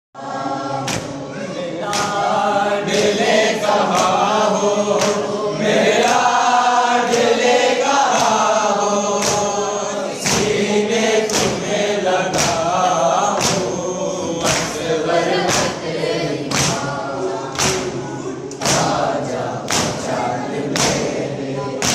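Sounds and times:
male voices chanting in unison: 0:00.2 - 0:21.9
hands slapping chest: 0:12.3 - 0:12.6, 0:16.5 - 0:16.8, 0:18.5 - 0:19.0, 0:19.6 - 0:20.0.

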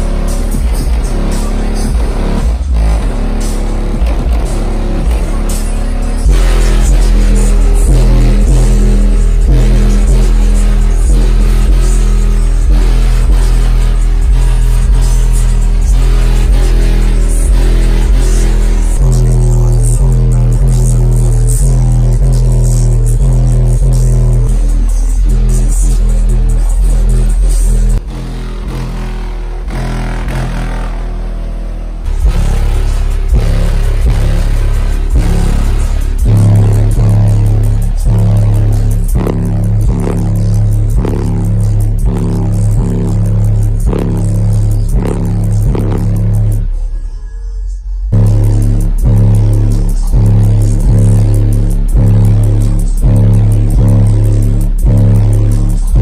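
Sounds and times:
bass-heavy electronic music: 0:00.0 - 0:56.0.

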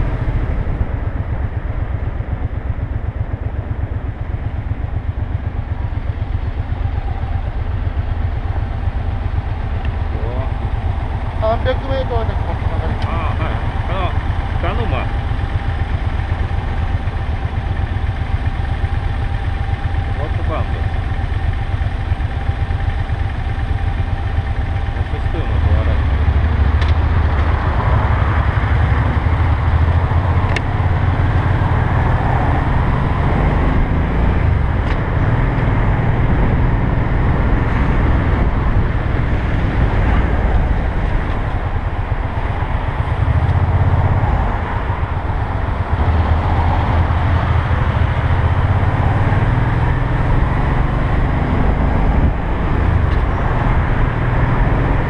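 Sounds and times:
motorcycle engine: 0:00.0 - 0:55.0
wind and road noise: 0:00.0 - 0:55.0.

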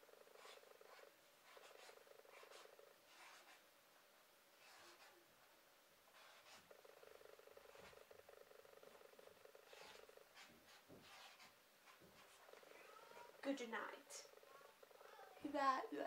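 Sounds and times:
marker scratching on paper: 0:00.3 - 0:03.6, 0:04.6 - 0:05.2, 0:06.1 - 0:06.8, 0:07.6 - 0:08.1, 0:09.6 - 0:15.3.

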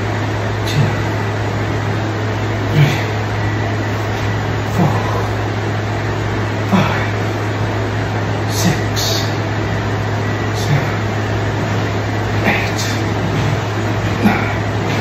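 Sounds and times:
steady low hum: 0:00.0 - 0:15.0
forceful breaths: 0:00.6 - 0:15.0.

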